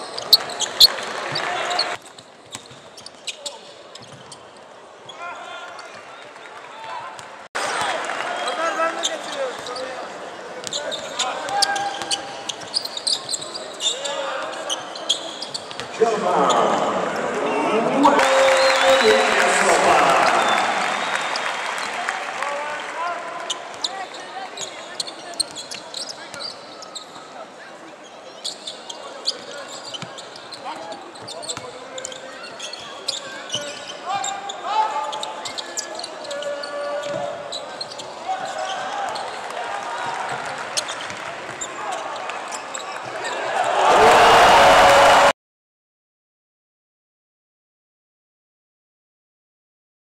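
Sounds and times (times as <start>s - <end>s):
crowd noise: 0.0s - 45.3s.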